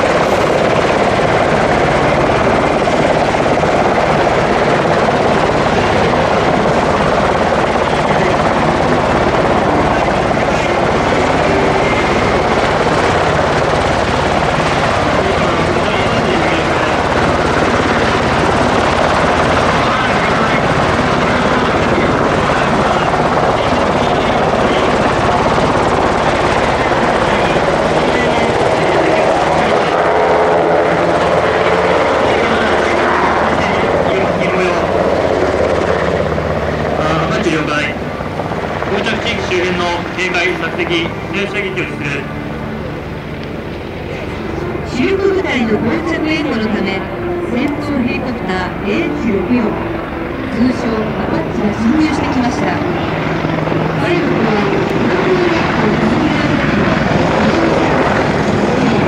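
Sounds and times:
helicopter hovering: 0.0 - 59.0.

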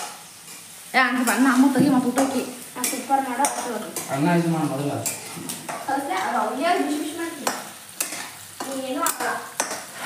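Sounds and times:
food sizzling in a pan: 0.0 - 10.0
spatula stirring: 0.0 - 10.0.

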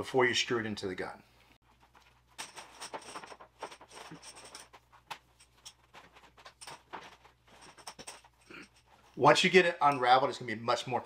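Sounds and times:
hose rustling and scraping: 1.6 - 9.4.

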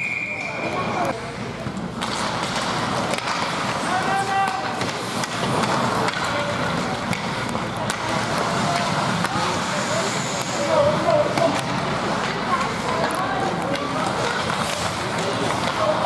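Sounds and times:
hockey sticks and puck clacking: 0.4 - 16.0
skate blades scraping ice: 2.0 - 16.0.

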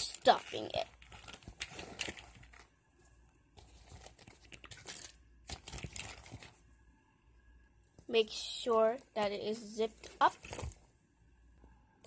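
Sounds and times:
rustling of fabric purse: 0.3 - 2.7, 3.6 - 6.6.

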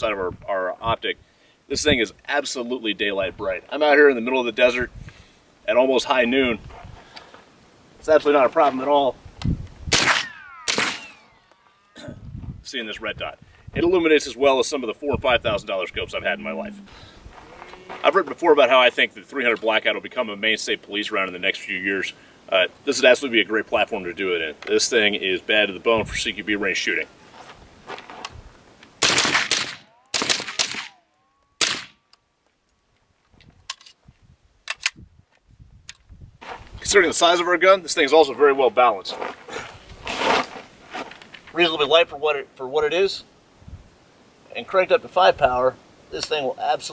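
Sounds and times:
suppressed rifle shots: 9.9 - 11.6, 29.0 - 30.9, 31.6 - 32.0
falling whine: 10.2 - 12.2.

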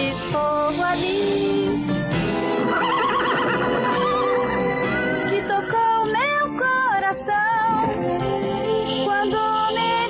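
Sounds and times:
orchestral cartoon music: 0.4 - 6.5
horse whinnying: 2.7 - 4.6.

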